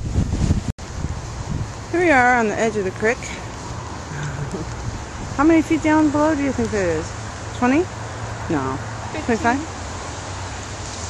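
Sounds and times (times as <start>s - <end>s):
wind buffeting microphone: 0.0s - 9.7s
rushing creek: 0.8s - 11.0s.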